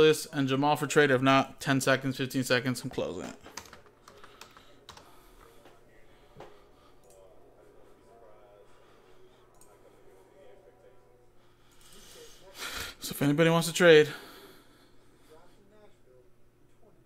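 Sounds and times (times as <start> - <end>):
person speaking: 0.0 - 14.3
low steady hum: 0.0 - 17.0.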